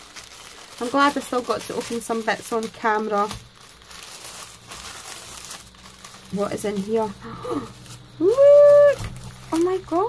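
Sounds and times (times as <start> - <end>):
tissue paper crinkling: 0.0 - 10.0.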